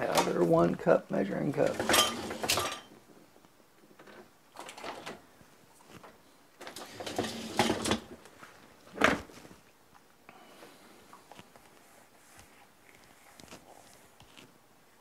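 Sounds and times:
drawers and cupboards rattling: 1.6 - 2.9, 4.0 - 5.2, 6.6 - 8.2.

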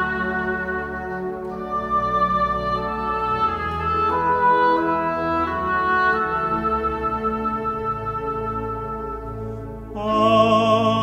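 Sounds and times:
slow woodwind melody: 0.0 - 10.2
sustained organ chords: 0.0 - 11.0.

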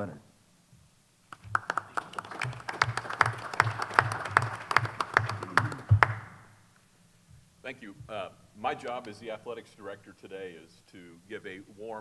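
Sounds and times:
small group applauding: 1.3 - 6.4.

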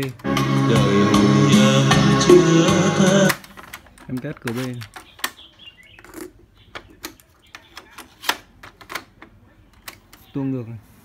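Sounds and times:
plastic clicks of cassette deck: 3.3 - 5.4.

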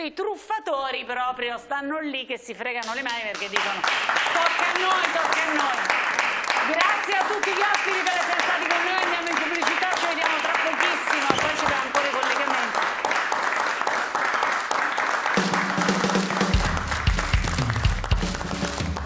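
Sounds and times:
audience applauding: 3.4 - 19.0.

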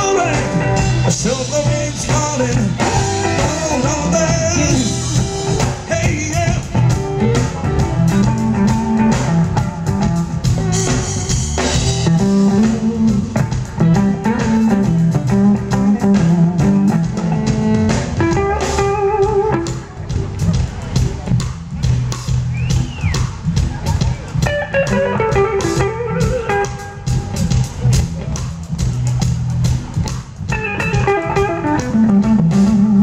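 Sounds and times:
electric guitar lead: 0.0 - 21.6, 23.6 - 33.0
smooth jazz band playing: 0.0 - 33.0.

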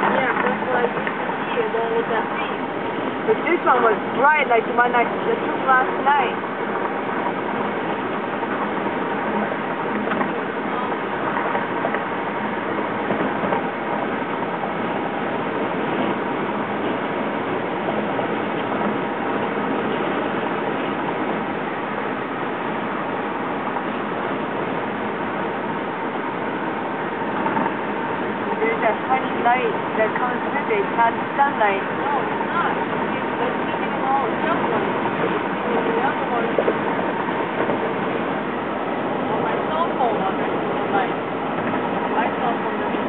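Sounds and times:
road and wind noise in car: 0.0 - 43.0.

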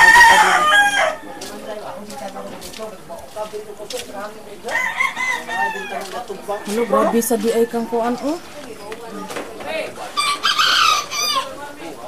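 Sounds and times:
rooster crowing: 0.0 - 1.3, 4.7 - 8.2, 10.2 - 11.6.

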